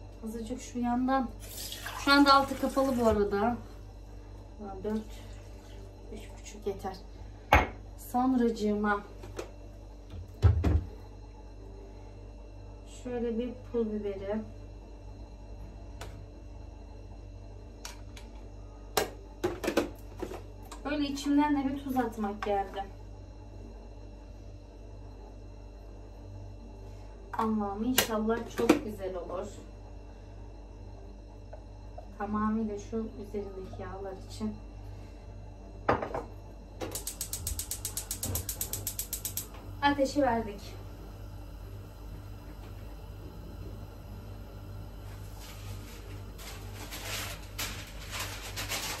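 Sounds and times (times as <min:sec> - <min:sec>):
gas hob igniter clicking: 0:36.8 - 0:39.8.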